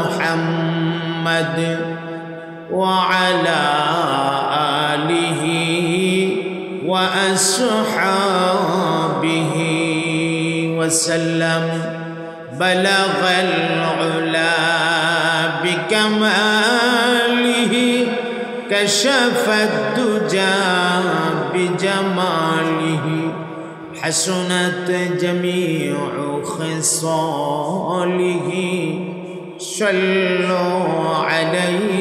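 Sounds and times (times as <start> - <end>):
man chanting through a pa: 0.0 - 32.0.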